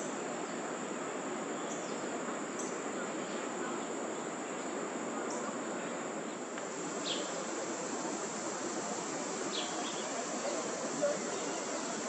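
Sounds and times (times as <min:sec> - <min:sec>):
outdoor background noise: 0:00.0 - 0:12.0
insect trill: 0:06.7 - 0:12.0.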